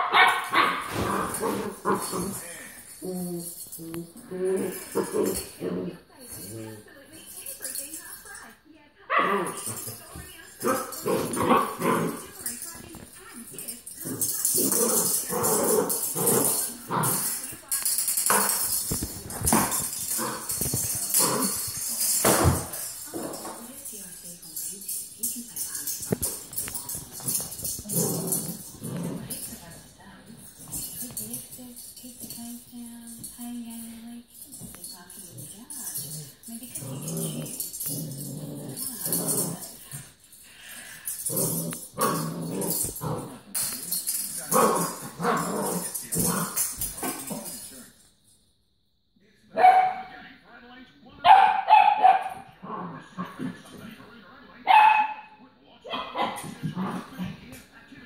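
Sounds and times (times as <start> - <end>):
small bells jangling: 0.3 - 8.7, 9.3 - 48.6.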